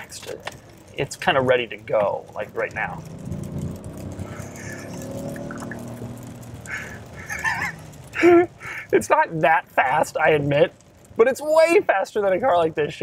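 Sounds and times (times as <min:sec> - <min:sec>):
car engine accelerating: 0:02.2 - 0:08.2
man laughing: 0:04.3 - 0:05.0, 0:06.7 - 0:09.0.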